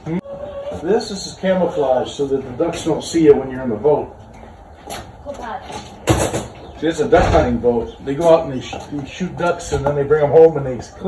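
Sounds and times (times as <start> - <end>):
small child's voice: 5.2 - 5.8.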